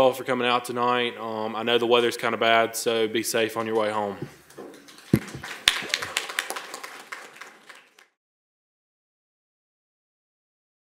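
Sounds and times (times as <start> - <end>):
audience applause: 4.8 - 8.2.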